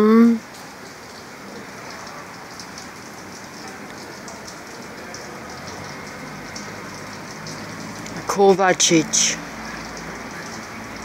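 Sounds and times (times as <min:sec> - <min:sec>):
light rain: 0:00.0 - 0:11.0.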